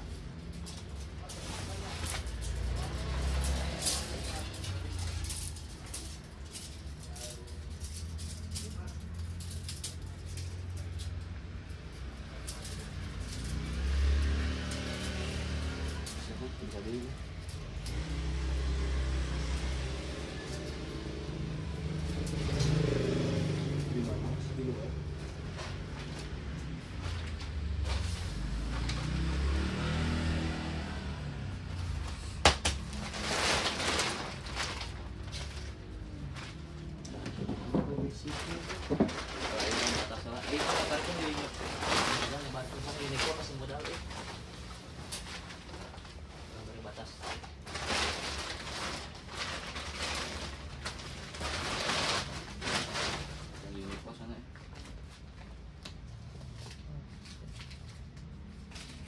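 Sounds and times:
plastic sheeting rustling: 0.0s - 55.7s.

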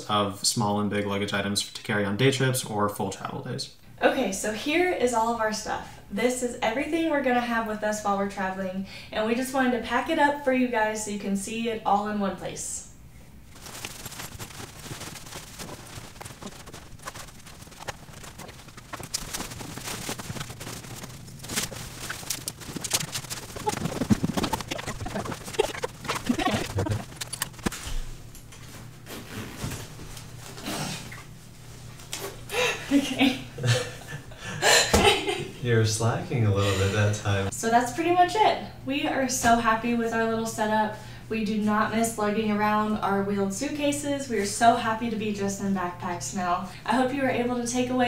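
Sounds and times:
woman speaking: 4.0s - 12.9s, 24.8s - 27.0s, 37.6s - 48.0s
clothes and gear rustling: 13.5s - 30.6s
breathy laughter: 25.0s - 27.2s.

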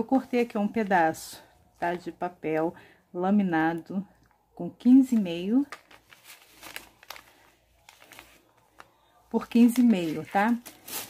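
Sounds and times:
foil paper crinkles: 5.7s - 9.0s, 9.7s - 11.0s.

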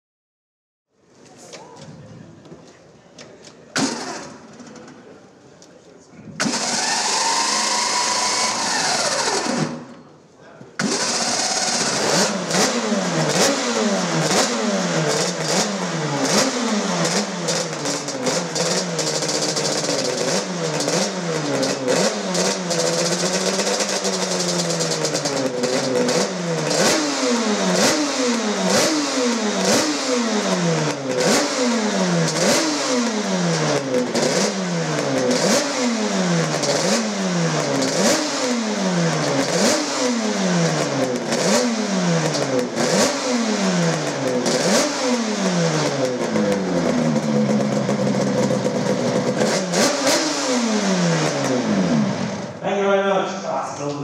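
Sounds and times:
two-stroke engine revving: 3.8s - 4.7s, 6.4s - 10.1s, 10.8s - 52.6s.

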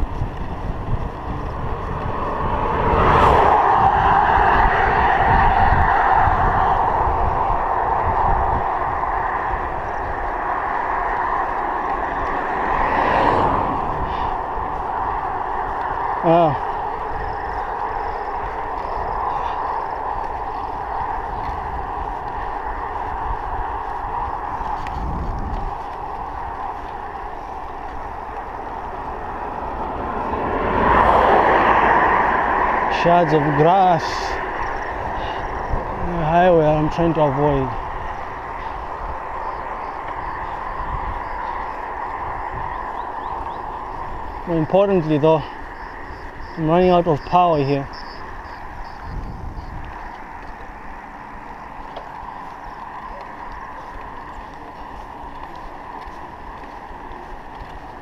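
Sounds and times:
bicycle tyre noise on road: 0.0s - 58.0s
car passing: 0.0s - 58.0s
wind rushing over microphone: 0.0s - 58.0s.

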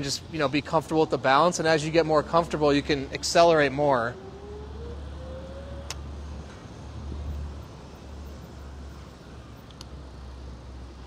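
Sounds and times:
click: 9.6s - 9.9s.

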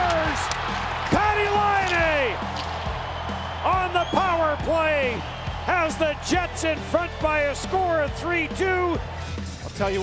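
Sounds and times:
background music: 0.0s - 10.0s
commentator shouting excitedly: 1.1s - 2.4s, 3.7s - 9.0s.

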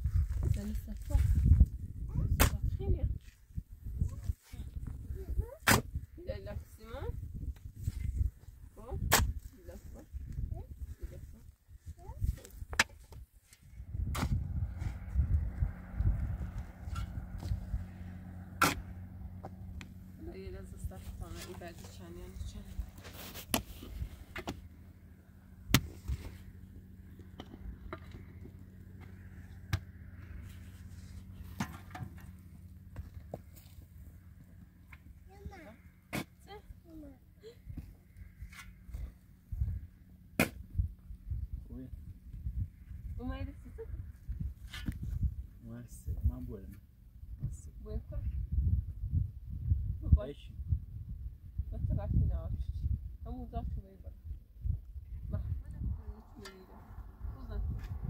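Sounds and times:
low steady hum: 0.0s - 58.0s
pickaxe striking stony soil: 2.4s - 2.6s, 5.6s - 6.0s, 9.0s - 9.4s, 12.7s - 13.2s, 14.0s - 14.4s, 18.6s - 18.9s, 23.3s - 24.6s, 25.7s - 26.2s, 36.1s - 36.4s, 40.4s - 40.6s.

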